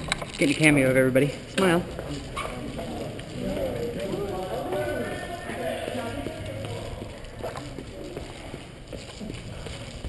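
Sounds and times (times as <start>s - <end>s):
indistinct background voices: 0.6s - 10.0s.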